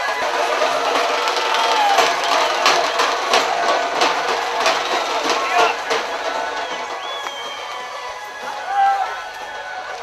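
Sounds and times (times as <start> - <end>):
sharp percussive beats: 0.0 - 8.8
crowd shouting: 0.0 - 10.0.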